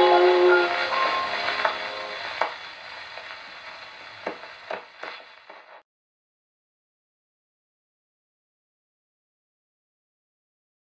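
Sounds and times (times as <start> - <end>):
jazz ballad on gramophone: 0.0 - 4.5
record surface hiss: 0.0 - 5.8
record clicks and crackles: 0.7 - 5.8.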